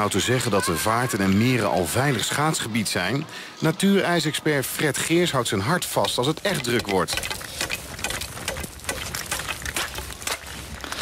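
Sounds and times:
thin ice cracking and crunching: 6.7 - 11.0.

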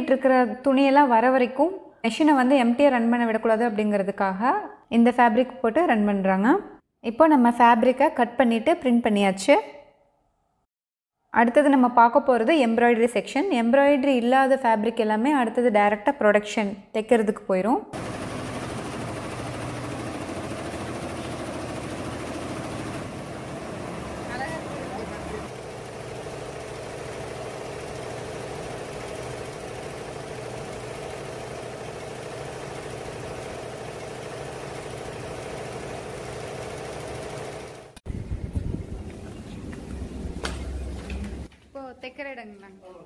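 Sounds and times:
embroidery machine clatter: 18.0 - 38.0.

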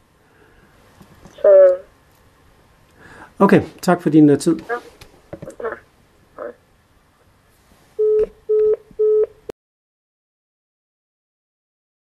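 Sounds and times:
telephone busy tone beeps: 8.0 - 9.4.

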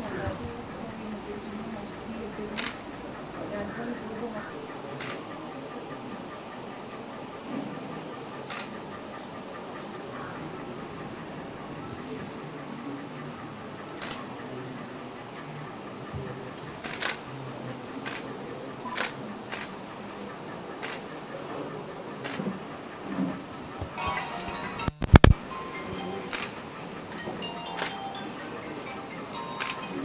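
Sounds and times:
people talking: 0.0 - 30.0.

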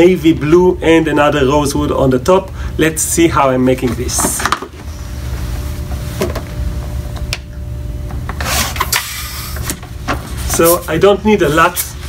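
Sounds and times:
balloon inflator humming: 8.2 - 10.8.

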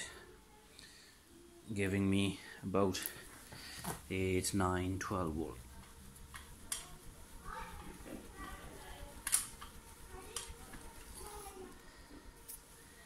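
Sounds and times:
faint indistinct speech: 5.6 - 13.0
sharp clicks: 6.3 - 6.9, 9.2 - 10.6.

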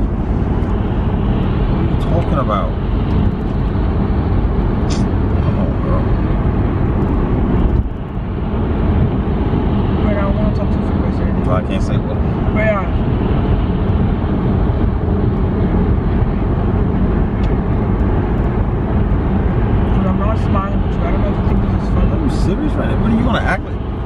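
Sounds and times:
car cabin road and engine noise: 0.0 - 24.0.

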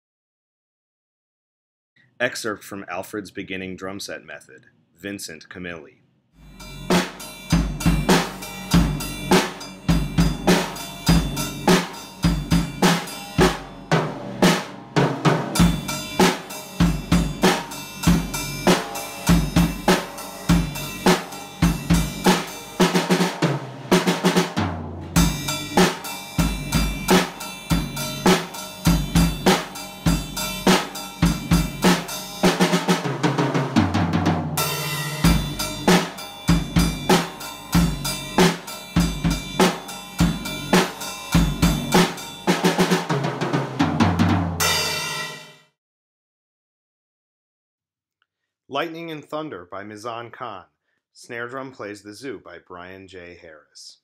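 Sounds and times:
drum kit groove: 6.4 - 45.6.

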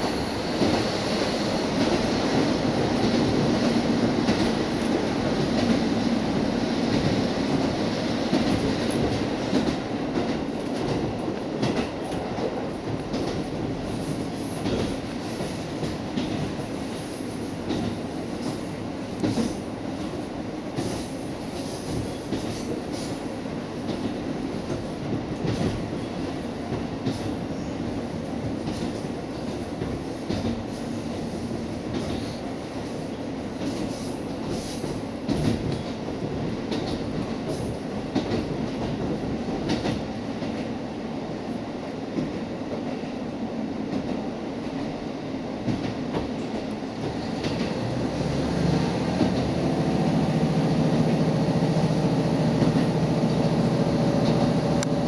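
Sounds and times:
railcar engine rumble: 0.0 - 55.0.

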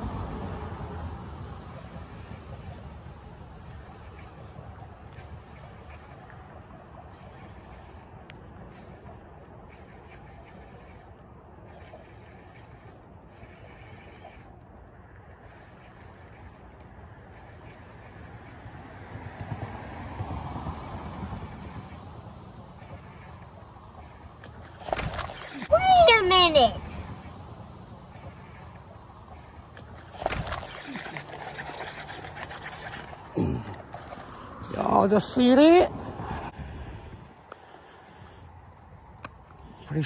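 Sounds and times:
bird chirps: 9.0 - 9.3
bump of rod and camera: 24.7 - 25.6.

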